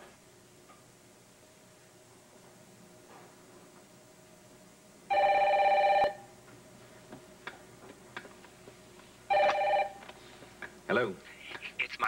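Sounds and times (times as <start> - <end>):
telephone electronic ring: 5.1 - 6.3, 9.3 - 10.0.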